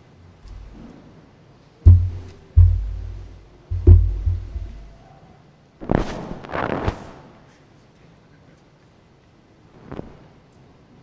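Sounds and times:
heavy deep thuds: 0.5 - 0.8, 1.9 - 5.0.

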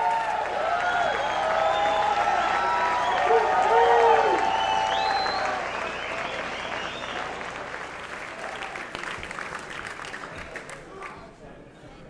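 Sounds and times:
audience applauding and cheering: 0.0 - 11.2
rising whistle: 0.9 - 7.3.

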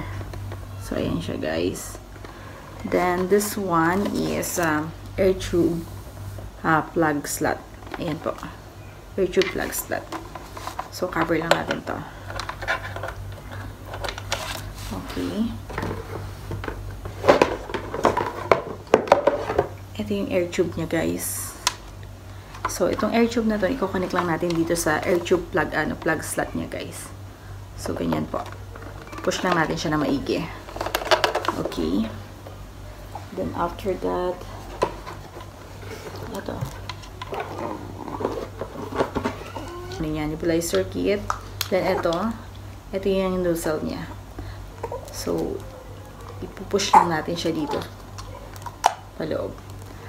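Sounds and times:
steady low hum: 0.0 - 50.0
plastic packaging rustling: 9.6 - 19.7, 34.4 - 40.1
handling noise: 33.2 - 42.7.

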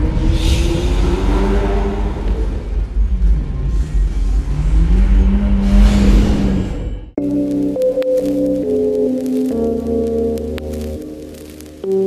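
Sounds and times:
car engine revving: 0.0 - 6.9
intro music: 7.2 - 12.0.

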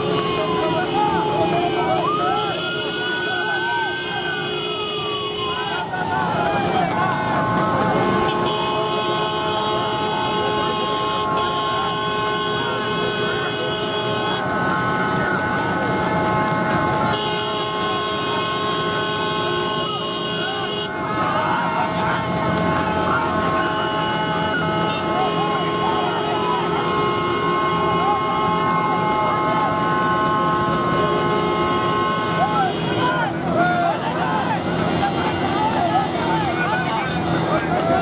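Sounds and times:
motorcycle engines running: 0.0 - 38.0
siren-like wail: 0.0 - 38.0
vehicle horns sounding: 0.0 - 38.0
voices shouting: 0.0 - 38.0.

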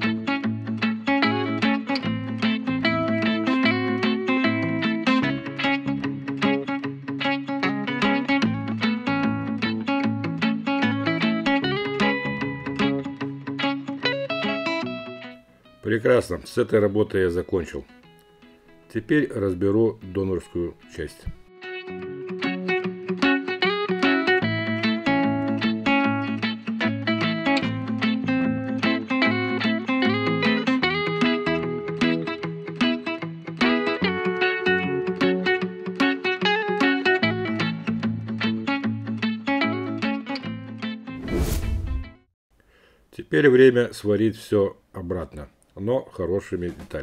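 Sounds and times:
plucked guitar music with beat: 0.0 - 41.2
brief rushing noise: 41.2 - 42.2.

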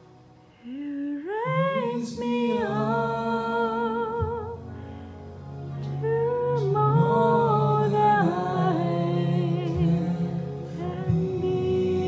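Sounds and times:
backing music: 0.0 - 12.0
man singing amplified: 0.8 - 4.6, 6.0 - 12.0.

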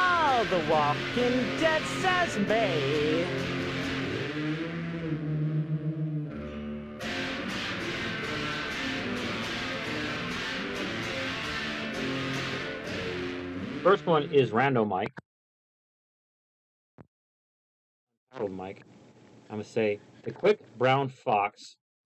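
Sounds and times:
electric guitar music: 0.0 - 14.6.

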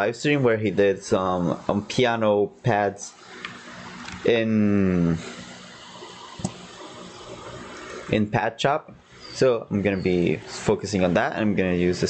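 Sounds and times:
man speaking: 0.0 - 3.2, 4.3 - 5.2, 8.1 - 12.0.

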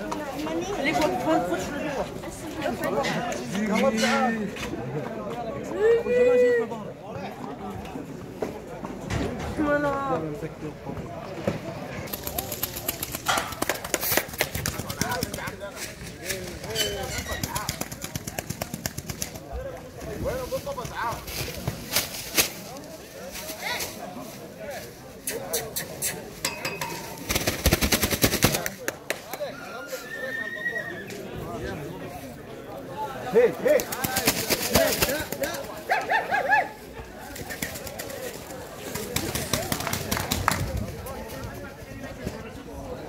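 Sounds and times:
sharp cracks and claps: 12.1 - 15.5
horse whinnying: 29.5 - 31.1.

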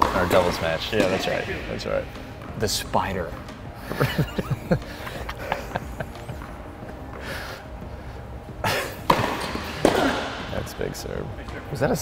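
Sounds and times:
racket hitting ball: 0.0 - 1.6, 9.0 - 10.5
tennis ball bouncing: 0.0 - 3.6, 9.0 - 10.5.

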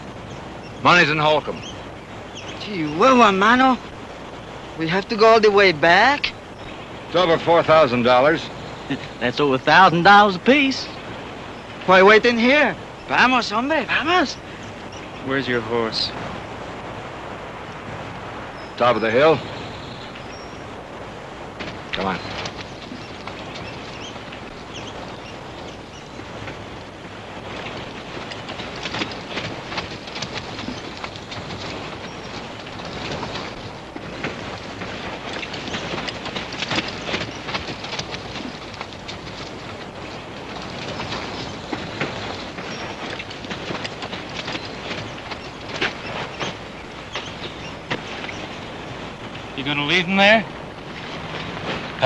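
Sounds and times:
horses moving about: 0.0 - 52.0.

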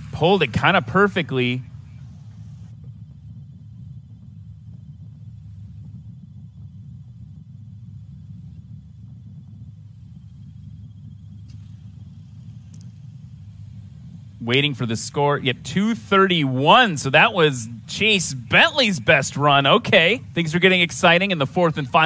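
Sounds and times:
propeller aircraft engine rumble: 0.0 - 22.0.

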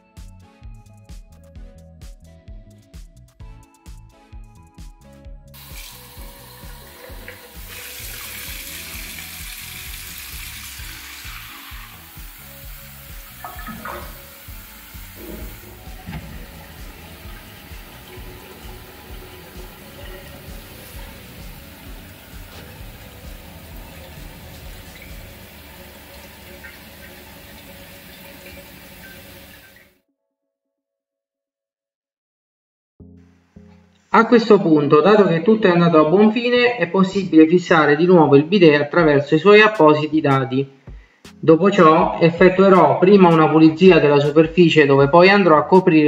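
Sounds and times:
water running into bowl: 5.6 - 29.9.

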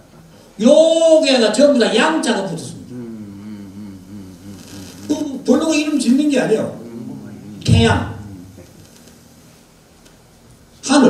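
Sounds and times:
faint electrical hum: 0.0 - 11.0
man humming through microphone: 2.2 - 9.4.

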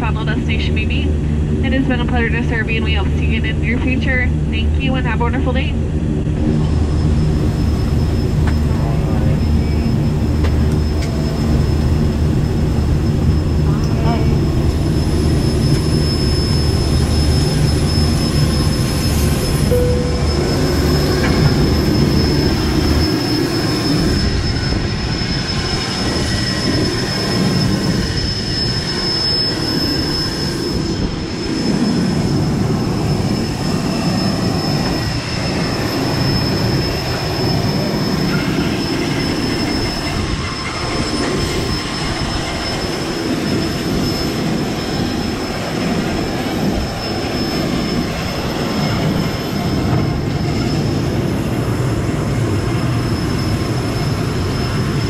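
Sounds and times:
low hum: 0.0 - 47.2
high-pitched whine: 0.0 - 55.0
rushing rumble: 0.0 - 55.0.

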